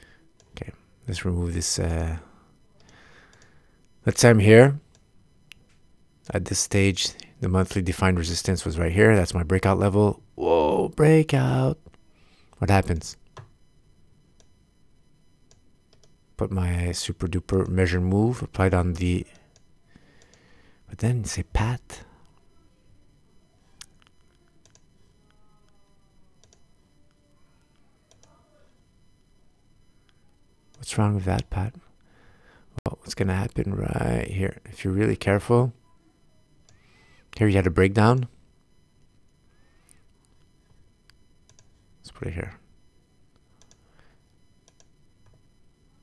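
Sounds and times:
computer mouse clicks: 15.5 - 16.2, 23.8 - 24.9, 26.4 - 26.6, 28.1 - 28.3, 41.1 - 41.8, 43.6 - 43.8, 44.6 - 45.4
faint computer mouse clicks: 43.6 - 43.8.

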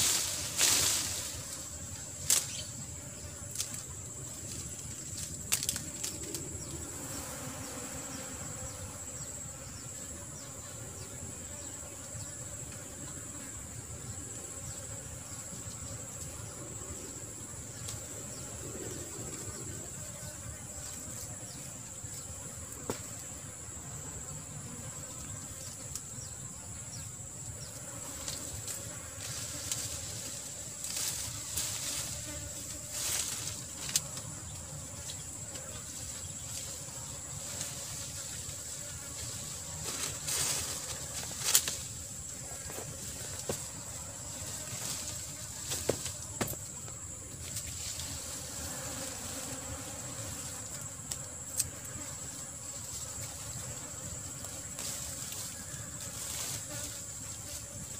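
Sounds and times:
insects droning: 0.0 - 57.9.

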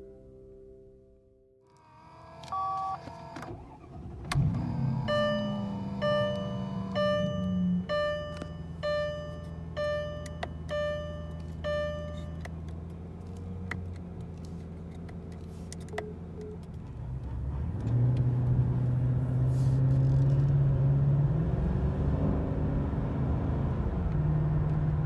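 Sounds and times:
car engine starting and idling: 1.6 - 25.0
dashboard warning chime beeping: 2.5 - 3.0, 4.4 - 12.5
two-note chime: 5.1 - 12.4.

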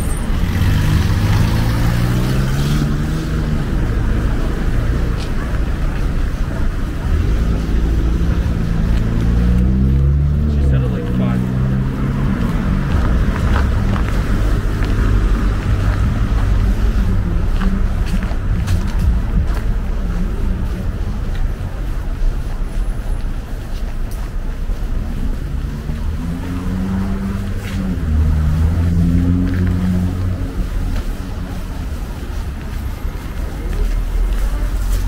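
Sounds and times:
rumble of passing cars: 0.0 - 35.0.

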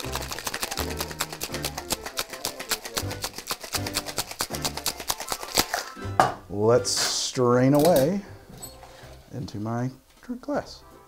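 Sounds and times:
ice rattling in cocktail shaker: 0.0 - 6.0.

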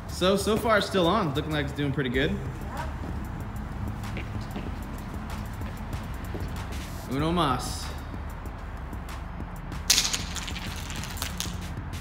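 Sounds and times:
flashlight clattering on concrete: 9.9 - 11.7.

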